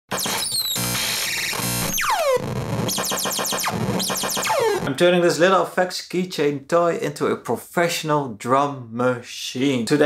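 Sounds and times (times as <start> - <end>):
quick falling electronic chirps: 0.2 - 4.9
falling laser-like zap: 2.9 - 4.9.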